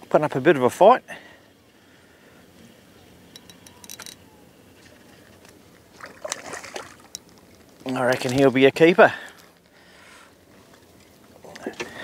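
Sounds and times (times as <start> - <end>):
calm water: 0.0 - 12.0
fish splashing at the surface: 5.9 - 7.1.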